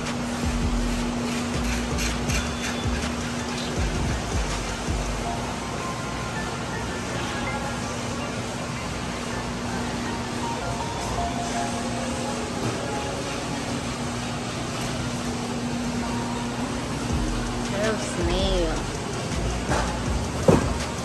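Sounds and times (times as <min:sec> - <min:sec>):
background music: 0:00.0 - 0:21.0
steady hum: 0:00.0 - 0:21.0.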